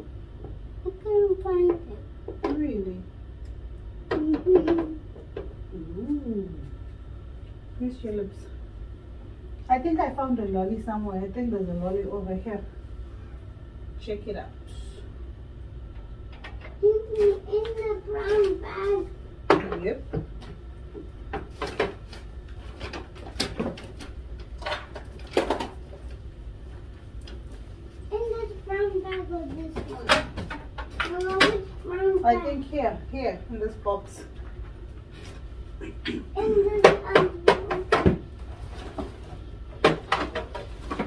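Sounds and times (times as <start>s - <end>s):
low room hum: 0.0s - 41.0s.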